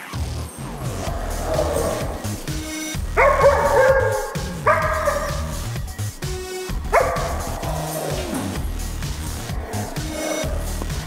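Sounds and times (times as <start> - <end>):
background music: 0.0 - 11.0
dog barking: 0.6 - 5.8, 6.8 - 8.6, 9.3 - 10.8.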